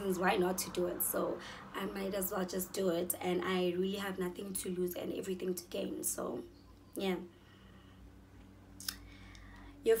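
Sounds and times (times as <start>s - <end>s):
woman speaking: 0.0s - 7.3s, 9.8s - 10.0s.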